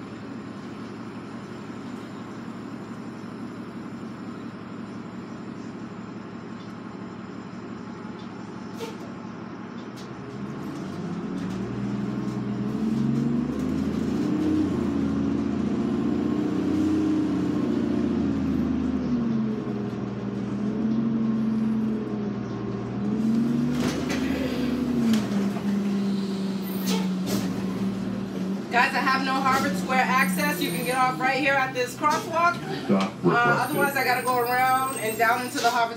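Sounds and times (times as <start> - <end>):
bus engine accelerating: 0.0 - 35.9
bus clunks: 8.0 - 15.9, 22.1 - 35.9.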